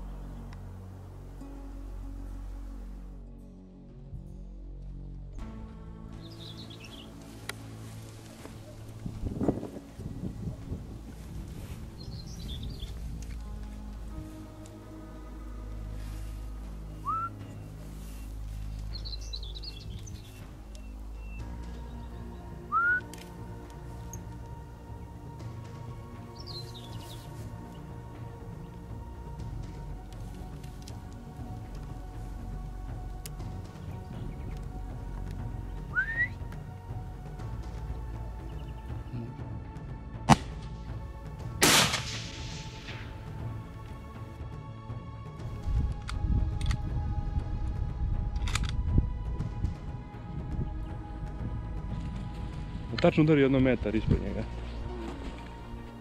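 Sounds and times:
faint background music: 0.0s - 56.0s
bird chirps: 16.9s - 23.1s, 26.3s - 27.4s, 35.8s - 36.4s
short rising whistles: 17.0s - 17.6s, 22.7s - 23.1s, 35.9s - 36.4s
rifle shots: 41.6s - 43.1s.

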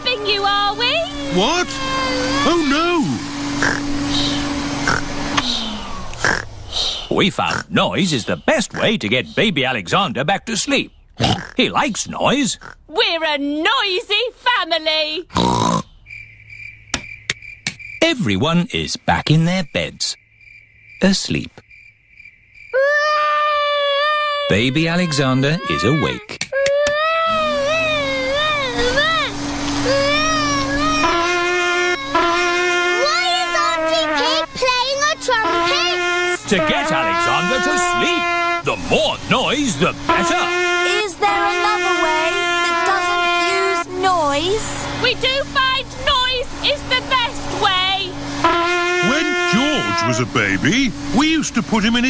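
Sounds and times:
cartoon baby crying: 0.9s - 3.1s, 22.8s - 32.4s
faint cricket chirping: 15.8s - 23.0s
toy trumpet buzzy note: 29.8s - 38.6s, 40.1s - 43.9s, 48.4s - 50.4s.

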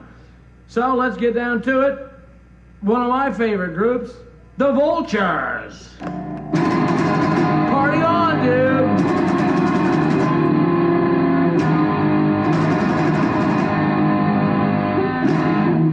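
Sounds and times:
electric guitar rock jam: 6.0s - 15.9s.

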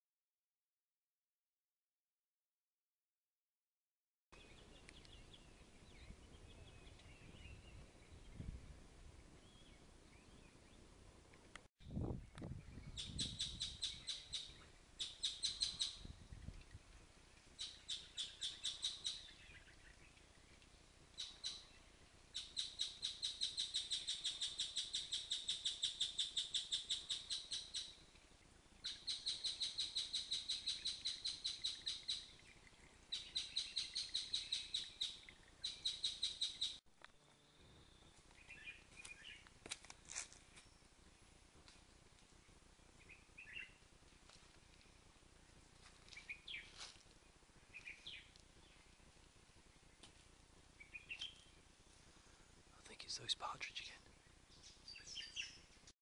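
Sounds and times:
bird chirping trill: 12.7s - 16.2s, 17.6s - 19.7s, 21.2s - 21.7s, 22.3s - 28.0s, 28.8s - 39.4s.

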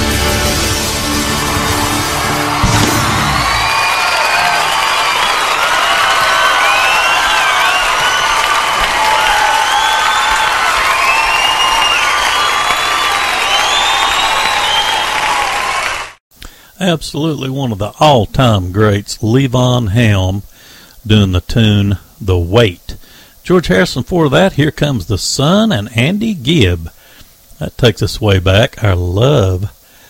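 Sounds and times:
band's final chord: 0.0s - 3.4s
audience applauding and cheering: 0.0s - 16.2s
whistles from audience: 2.0s - 16.2s.

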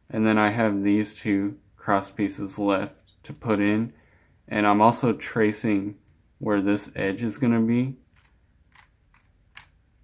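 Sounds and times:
plastic cube clicks: 8.1s - 9.8s.

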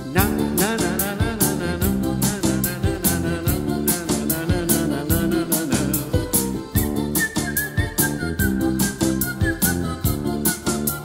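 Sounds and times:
live band playing: 0.0s - 11.0s
high whistled melody: 6.3s - 11.0s.

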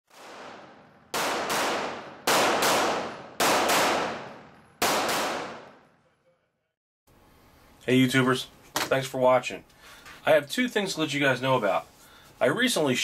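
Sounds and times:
pistol shots echoing indoors: 0.1s - 6.2s.

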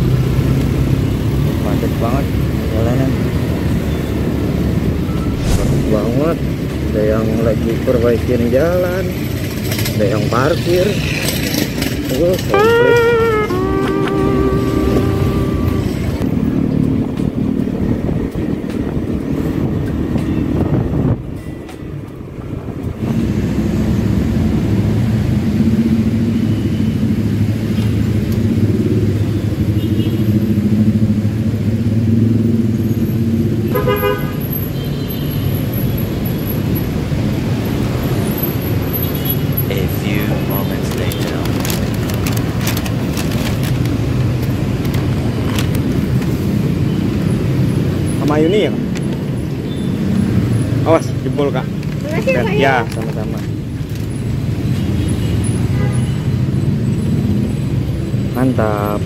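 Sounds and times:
street traffic: 0.0s - 59.0s
horn toot: 12.4s - 16.2s.

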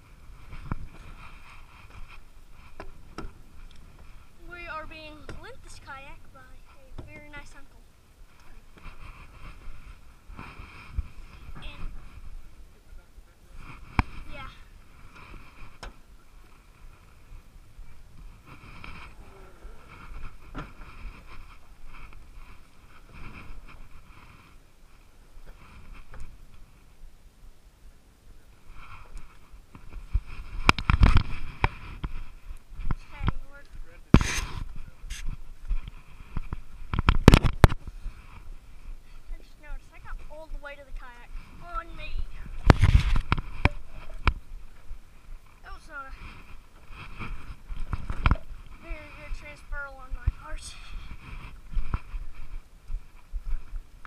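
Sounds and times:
rubbing on microphone: 0.0s - 27.0s, 28.5s - 54.0s
plastic kayak knocking and scraping: 34.2s - 38.6s, 41.4s - 44.9s, 46.2s - 49.5s.

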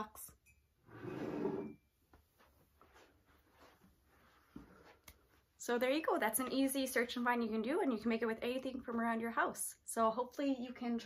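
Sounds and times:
mug scraping on wood: 0.9s - 1.8s.

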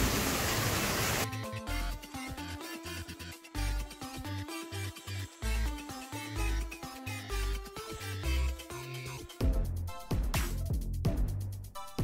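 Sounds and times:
water stream splashing into pond: 0.0s - 1.3s
electronic music with steady beat: 1.3s - 12.0s.

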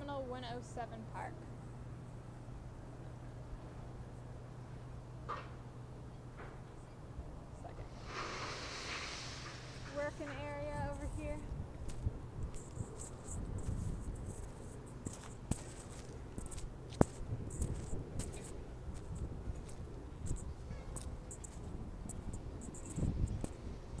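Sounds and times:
steady low rumble: 7.0s - 24.0s.

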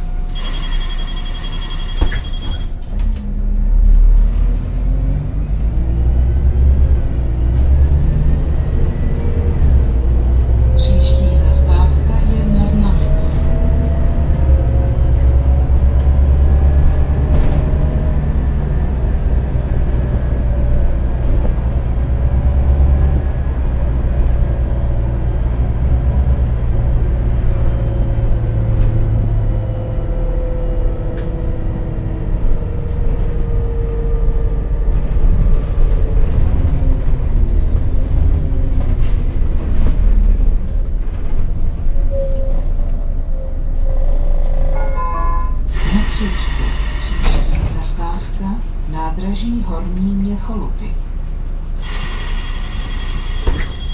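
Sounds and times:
bus engine droning: 0.0s - 53.9s.

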